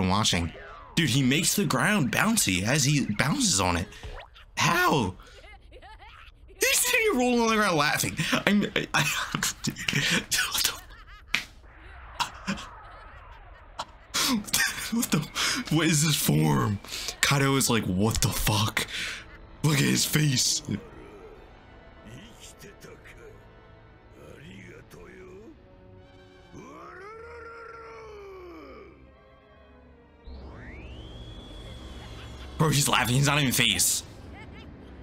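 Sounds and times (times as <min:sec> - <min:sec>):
short snaps: 0:11.3 - 0:11.6
whip-like crack: 0:11.3 - 0:11.6
drawn-out voice-like cry: 0:26.6 - 0:29.0.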